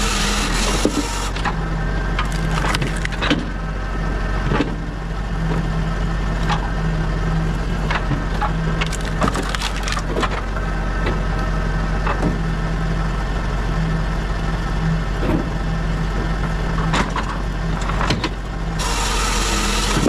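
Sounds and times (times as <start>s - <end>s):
machine engine drone: 0.0s - 20.0s
wood cracking and splintering: 0.8s - 3.6s, 7.9s - 10.5s.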